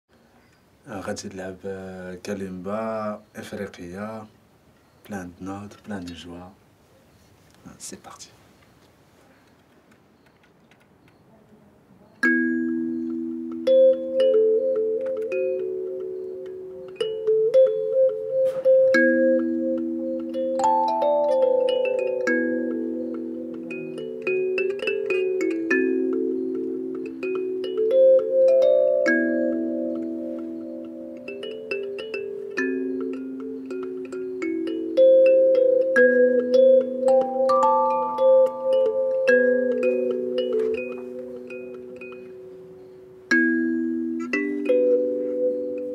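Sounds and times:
kalimba melody: 0:12.2 - 0:45.9.

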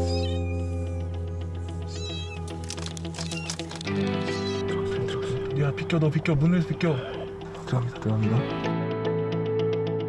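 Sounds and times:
background music with held notes: 0:00.0 - 0:10.0
kittens mewing: 0:01.9 - 0:02.6, 0:04.2 - 0:05.4.

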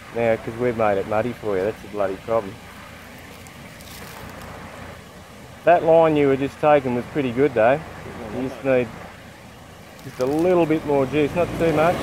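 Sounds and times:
river water rushing: 0:00.0 - 0:12.0
vehicle engine running low: 0:00.0 - 0:12.0.

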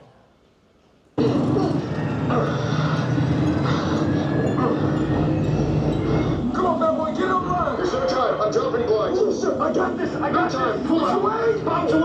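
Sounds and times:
fighter jet engine roar: 0:01.2 - 0:12.0.

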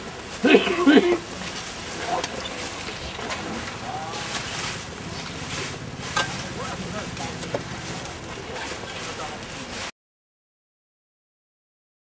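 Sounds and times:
shovel scraping soil: 0:01.4 - 0:06.6.

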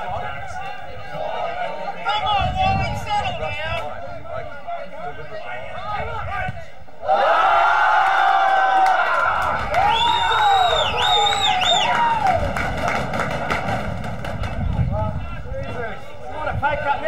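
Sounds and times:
crowd shouting and cheering: 0:00.0 - 0:17.0.

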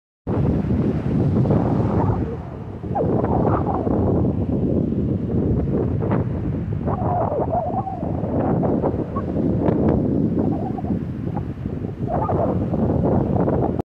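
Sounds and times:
small waves breaking on shore: 0:00.3 - 0:13.8
wind buffeting microphone: 0:00.3 - 0:13.8.

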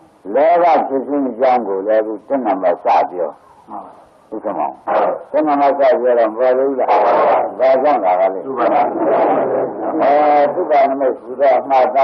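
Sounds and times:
man preaching: 0:00.2 - 0:12.0.

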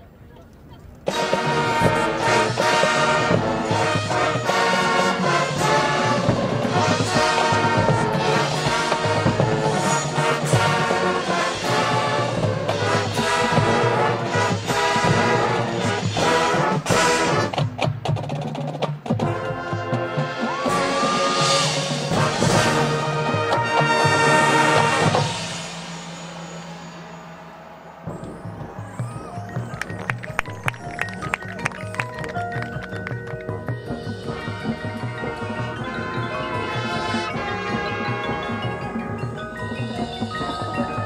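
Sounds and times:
marching band playing: 0:00.9 - 0:41.0.

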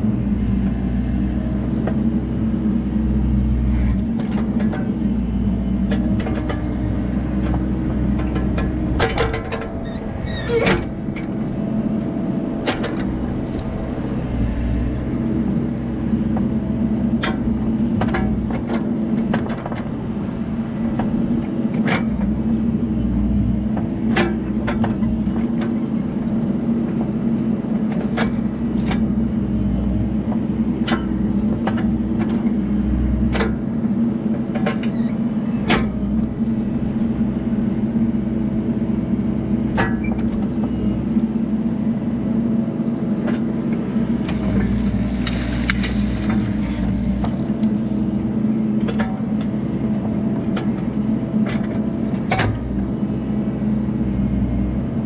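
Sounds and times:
diesel engine rumbling: 0:00.0 - 0:55.0.

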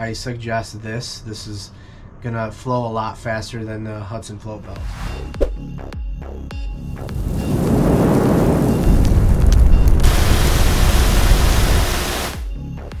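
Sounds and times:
building noise rumble: 0:07.0 - 0:12.3
spray-like hiss burst: 0:10.0 - 0:12.4.

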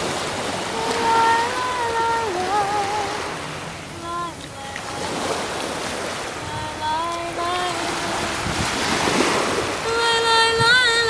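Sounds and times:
surf washing on sand: 0:00.0 - 0:11.0
wind buffeting microphone: 0:00.0 - 0:11.0
woman singing unaccompanied: 0:00.6 - 0:11.0.

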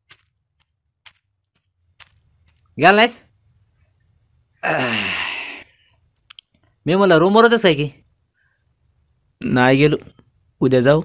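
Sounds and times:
man speaking: 0:02.8 - 0:03.3, 0:09.4 - 0:11.0
man sighing: 0:04.6 - 0:05.9.

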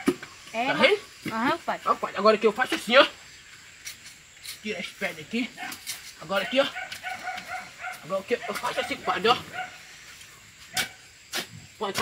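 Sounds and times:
hoe chopping into sandy soil: 0:10.7 - 0:12.0.

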